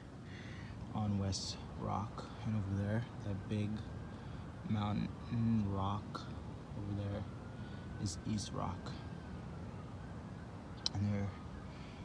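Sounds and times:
faint distant siren: 0.0s - 12.0s.

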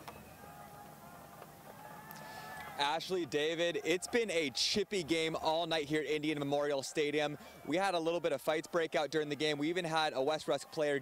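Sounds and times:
stadium crowd murmur: 0.0s - 11.0s.

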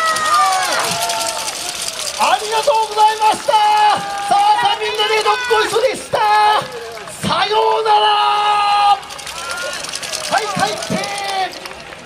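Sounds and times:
steady high clatter: 0.0s - 7.3s, 8.9s - 12.0s
crowd shouting and cheering: 0.0s - 12.0s.

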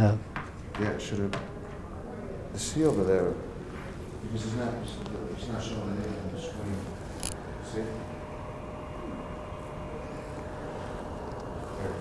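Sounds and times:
room hiss: 2.6s - 12.0s
low hum: 5.0s - 12.0s.

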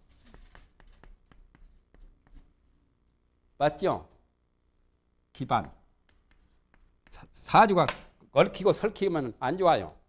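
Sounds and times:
chalk tapping and scratching: 0.0s - 2.6s, 5.6s - 7.5s.

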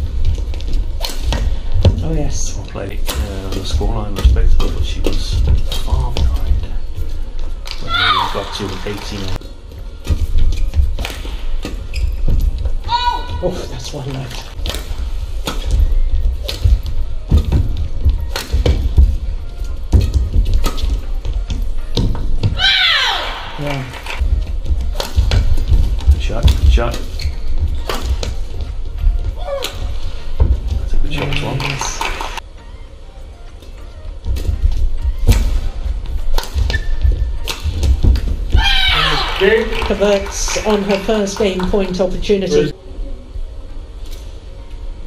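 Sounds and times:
shoes sliding squeals: 11.8s - 13.2s, 27.0s - 27.9s, 36.6s - 37.4s
racket striking shuttlecock: 18.3s - 18.8s, 24.9s - 25.6s, 27.8s - 28.4s, 36.3s - 38.2s.

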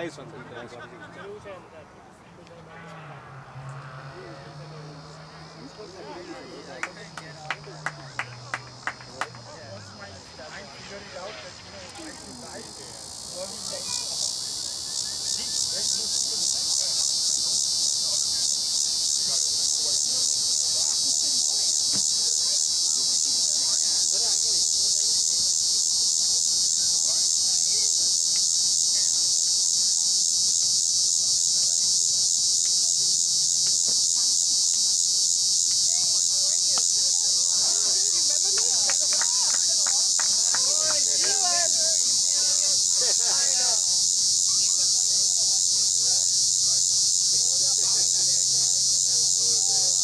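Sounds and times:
high-pitched insect chorus: 2.7s - 50.0s.

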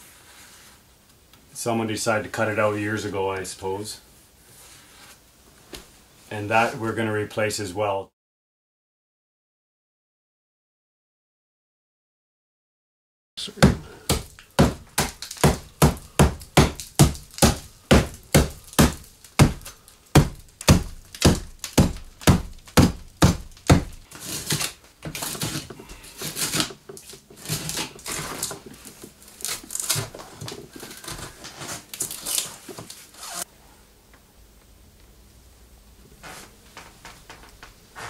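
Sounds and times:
hammer striking wood: 13.6s - 24.0s
rotten wood cracking: 13.6s - 33.0s.

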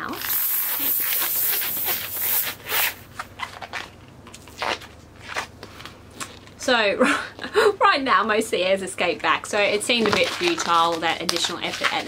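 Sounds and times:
air hissing out of balloon: 0.0s - 3.0s
balloon latex squeaking: 0.0s - 3.0s.

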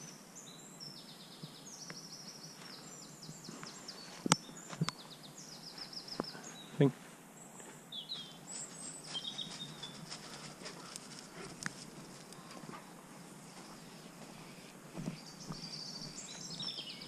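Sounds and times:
songbirds singing and chirping: 0.0s - 17.0s
footsteps in dry leaves: 8.2s - 12.5s.

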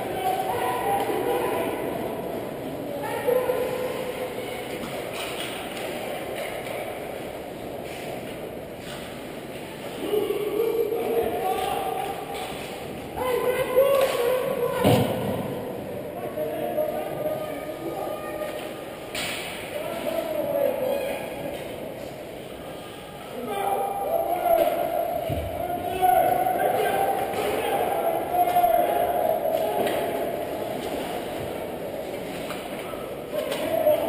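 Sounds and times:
shouting voices in a rink: 0.0s - 34.0s.

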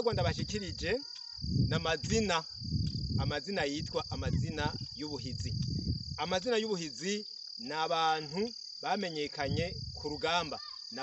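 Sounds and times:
man speaking: 0.0s - 2.5s, 3.2s - 5.6s, 6.2s - 11.0s
crickets chirring: 0.0s - 11.0s.

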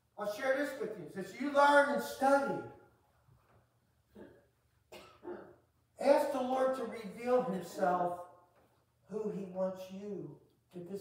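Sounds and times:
person coughing faintly: 4.1s - 5.6s.

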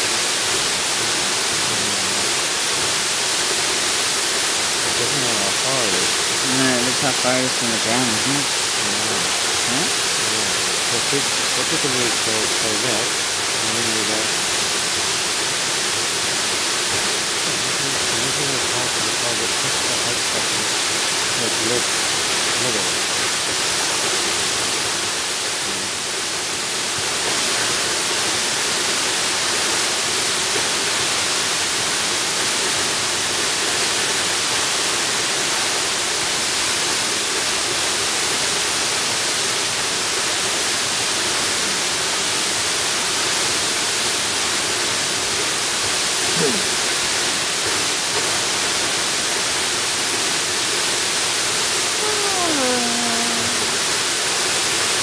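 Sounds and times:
waterfall pouring: 0.0s - 52.0s.

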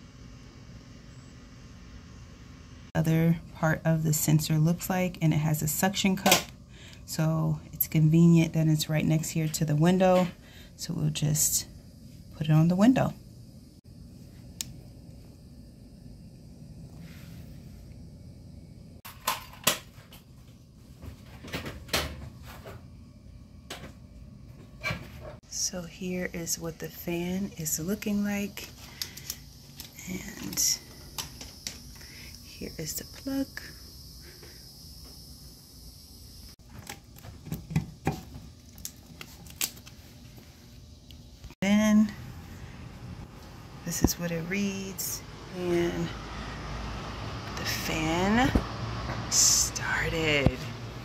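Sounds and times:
low steady background hum: 0.0s - 51.0s.

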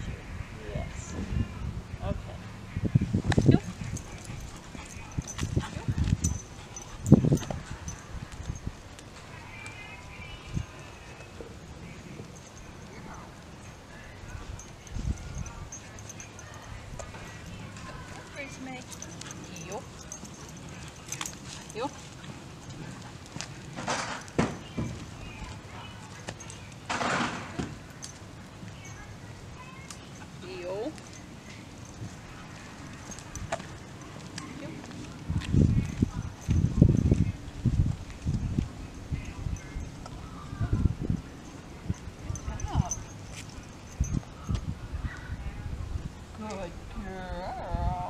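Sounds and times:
footsteps clicking on pavement: 14.7s - 26.9s, 29.8s - 39.0s.

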